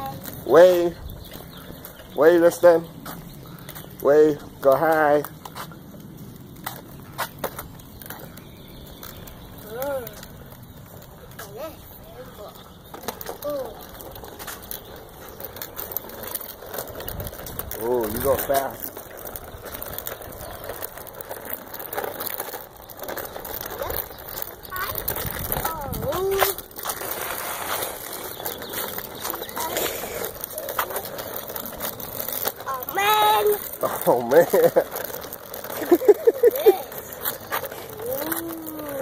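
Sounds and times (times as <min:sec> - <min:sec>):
tricycle rolling over pavement: 0:00.0 - 0:39.0.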